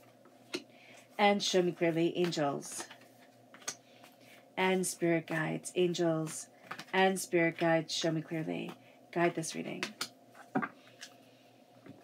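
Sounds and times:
cards being shuffled: 1.5s - 4.2s, 6.2s - 7.7s.

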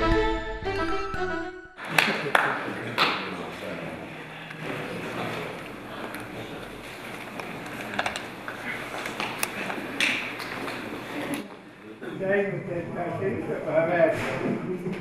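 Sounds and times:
indistinct voices in a hall: 1.8s - 15.0s.

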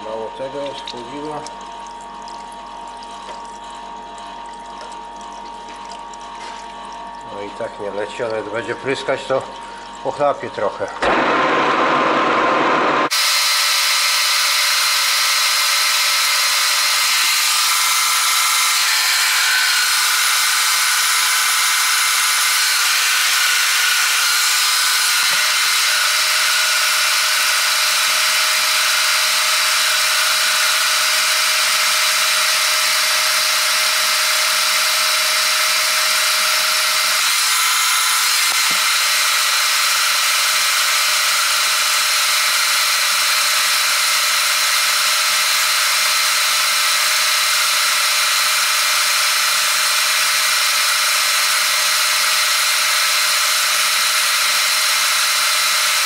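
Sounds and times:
metal lathe boring with whining tones: 0.0s - 56.0s.

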